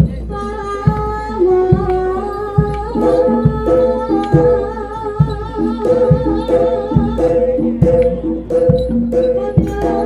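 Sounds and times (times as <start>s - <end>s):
repeating metallophone notes: 2.2s - 10.0s.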